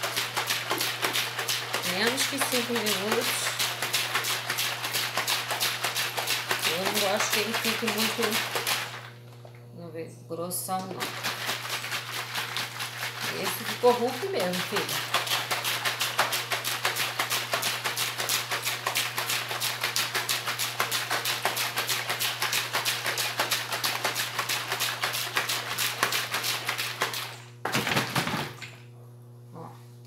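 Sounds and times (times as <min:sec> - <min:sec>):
liquid sloshing in plastic bottle: 0:00.0 - 0:09.2, 0:10.8 - 0:28.8.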